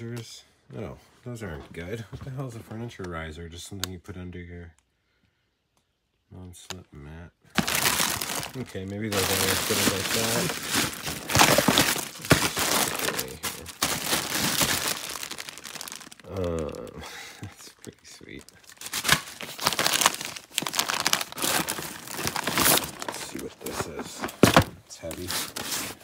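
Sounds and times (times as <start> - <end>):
plastic bags crinkling: 7.5 - 26.0
murmured voice: 16.2 - 18.2.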